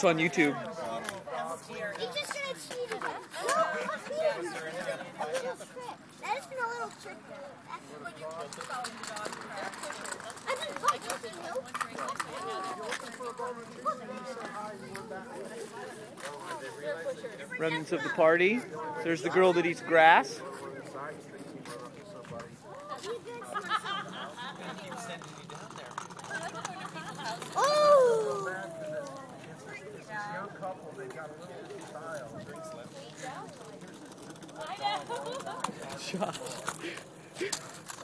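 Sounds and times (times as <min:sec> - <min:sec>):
children and adults talking: 0:00.0 - 0:38.0
scooter wheels clacking over pavers: 0:00.9 - 0:05.6, 0:08.0 - 0:15.1, 0:22.4 - 0:29.7, 0:31.0 - 0:38.0.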